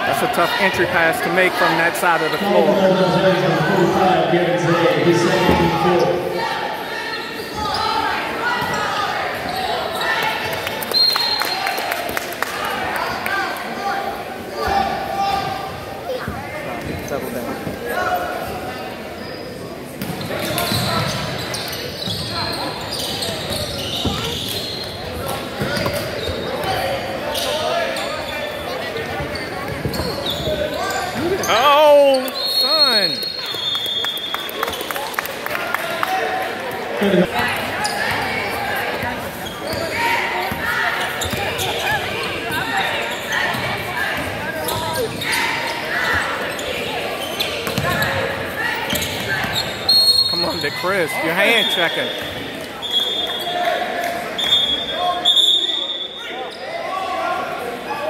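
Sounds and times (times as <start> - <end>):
sneakers squeaking on floor: 0.2 - 11.7, 16.1 - 35.0, 37.0 - 56.9
basketball bouncing on court: 23.4 - 24.6, 47.6 - 48.2.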